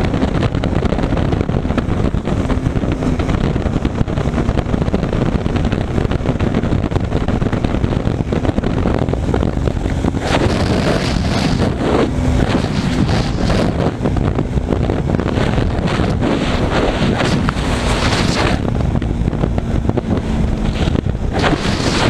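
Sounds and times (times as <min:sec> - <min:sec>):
motorcycle engine running: 0:00.0 - 0:22.0
wind rushing over microphone: 0:00.0 - 0:22.0.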